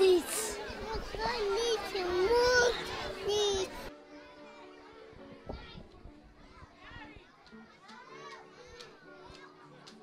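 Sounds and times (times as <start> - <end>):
children chattering: 0.0 - 10.0
soft music: 0.0 - 10.0.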